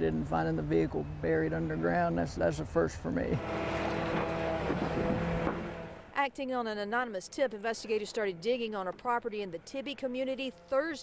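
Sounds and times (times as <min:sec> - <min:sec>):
diesel engine running: 0:00.0 - 0:06.1.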